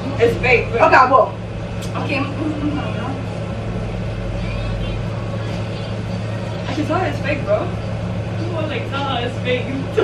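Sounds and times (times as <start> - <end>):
faint indistinct voices: 0.0 - 10.0
steady low hum: 0.0 - 10.0.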